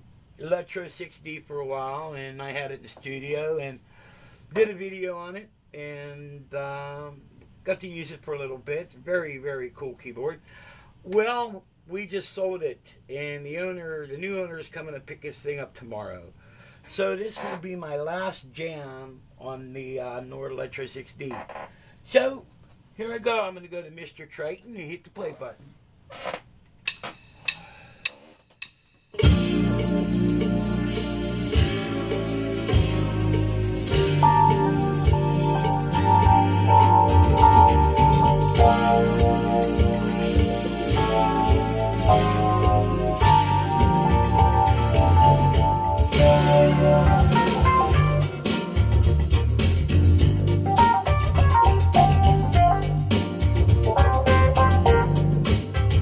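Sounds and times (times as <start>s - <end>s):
band backing track: 29.2s - 56.0s
keyboard playing organ-like chords: 29.2s - 56.0s
strong bass line: 29.2s - 56.0s.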